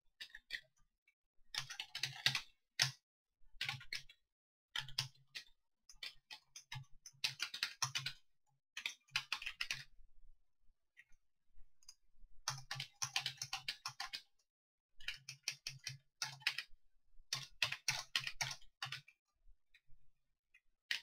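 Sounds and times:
keyboard typing: 1.6s - 2.9s, 12.5s - 14.3s, 15.1s - 16.7s, 17.3s - 19.1s.

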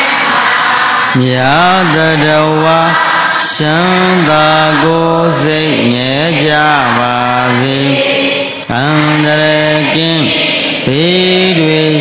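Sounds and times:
devotional chanting: 0.0s - 12.0s.

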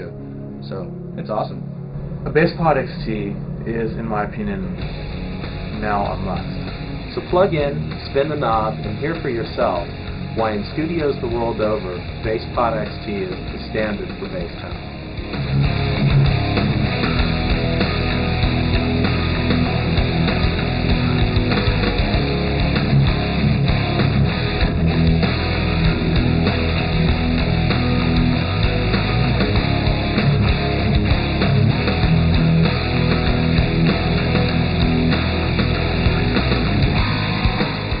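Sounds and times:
bass guitar line: 0.0s - 38.0s
hard rock music: 0.0s - 38.0s.

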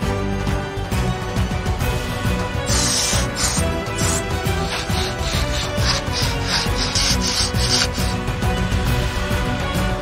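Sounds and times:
background music with steady beat: 0.0s - 10.0s
paintbrush scrubbing wooden slats: 2.7s - 8.2s.

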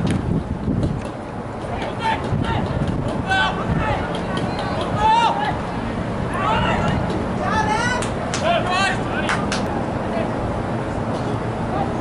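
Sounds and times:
people shouting calls: 1.7s - 5.7s, 6.3s - 9.6s.

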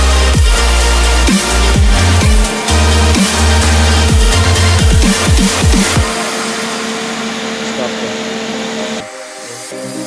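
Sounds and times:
electric fan running: 0.1s - 9.5s.

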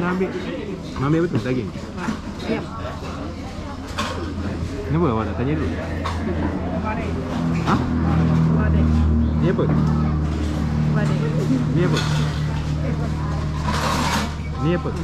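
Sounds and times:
low engine hum: 5.2s - 15.0s.

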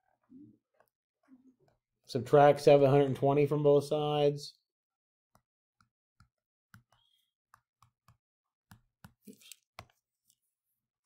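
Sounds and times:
stylus tapping on a screen: 5.4s - 10.0s.

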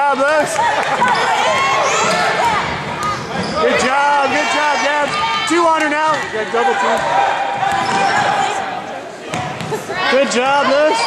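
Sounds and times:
voices echoing in a hall: 0.0s - 11.0s.

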